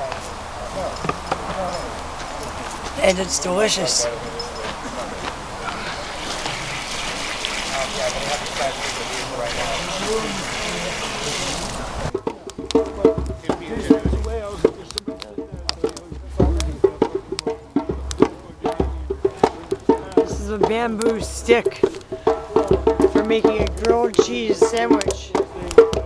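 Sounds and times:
campfire crackling and popping: 0:00.0 - 0:26.0
faint voices: 0:00.0 - 0:26.0
steady outdoor hiss: 0:00.0 - 0:26.0.

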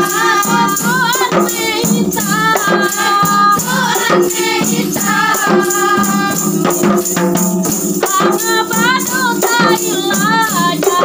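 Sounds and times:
frame drums beating: 0:00.0 - 0:11.0
women singing together: 0:00.0 - 0:11.0.

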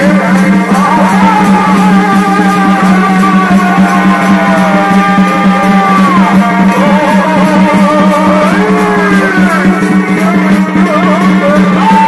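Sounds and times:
fast drumming: 0:00.0 - 0:12.0
reed pipe melody: 0:00.0 - 0:12.0.

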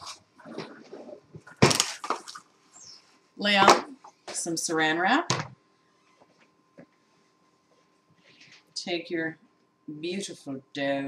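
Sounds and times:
plastic wrap rustling and ripping: 0:00.0 - 0:02.5.

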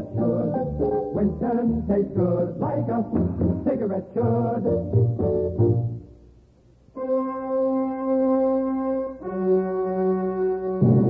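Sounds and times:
held brass notes: 0:07.0 - 0:11.0.

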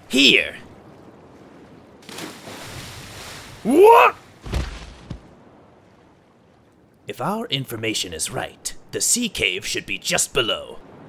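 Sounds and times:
water rushing along boat hull: 0:00.0 - 0:11.0.

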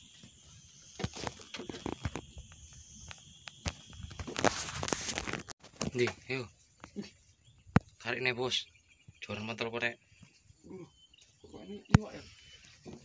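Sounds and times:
high insect drone: 0:00.0 - 0:06.5.

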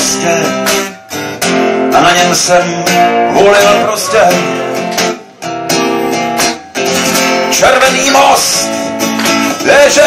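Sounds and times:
acoustic guitar strummed: 0:00.0 - 0:10.0.

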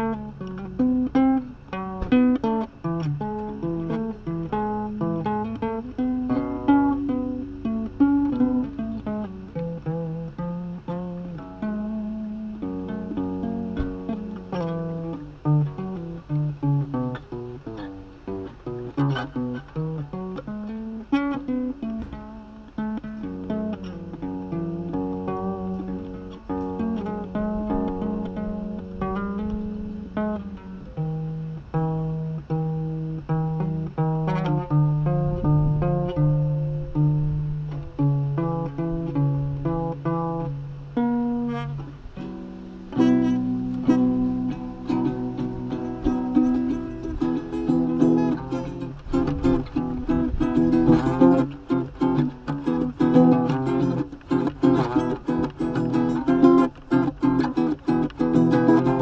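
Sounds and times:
acoustic guitar melody: 0:00.0 - 0:59.0
strummed guitar chords: 0:00.0 - 0:59.0.

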